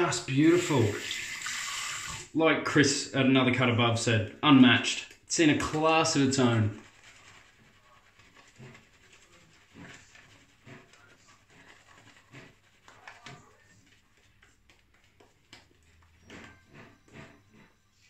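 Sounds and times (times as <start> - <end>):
wet shaving brush strokes: 0.2 - 2.3, 5.7 - 17.7.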